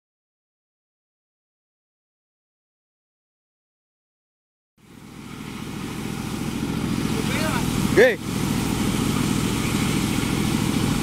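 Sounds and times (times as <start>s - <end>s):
excavator diesel engine running: 4.8s - 11.0s.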